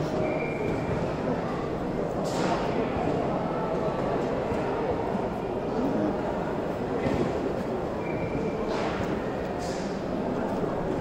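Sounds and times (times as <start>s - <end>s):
crowd noise in busy hall: 0.0s - 11.0s.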